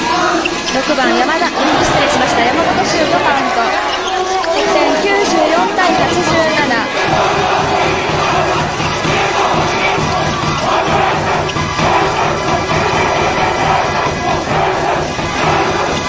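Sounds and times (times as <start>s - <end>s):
crowd chanting and shouting: 0.0s - 16.0s
low drum beat: 5.8s - 16.0s.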